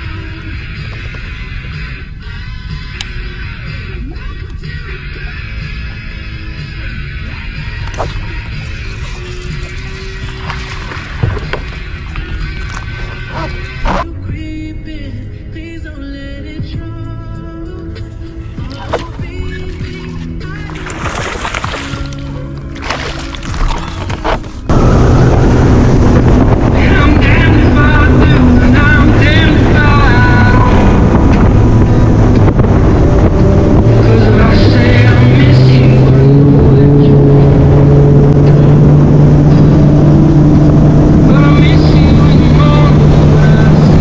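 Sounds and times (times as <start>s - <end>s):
background music: 0.0s - 38.2s
outboard motor running at speed: 5.4s - 14.1s, 18.5s - 44.0s
wind noise on microphone: 24.0s - 44.0s.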